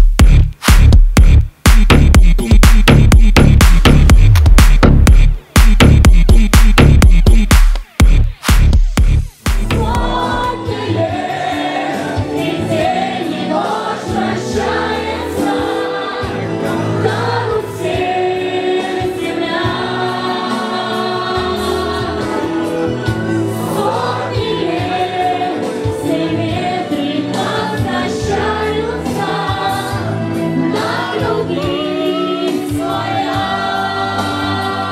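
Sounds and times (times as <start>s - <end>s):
musical accompaniment: 0.0s - 34.9s
group of people singing: 9.6s - 34.9s.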